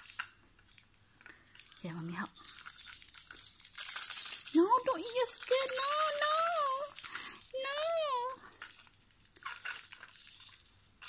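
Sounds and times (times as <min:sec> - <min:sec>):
plastic toy rattle shaken: 0:00.0 - 0:11.0.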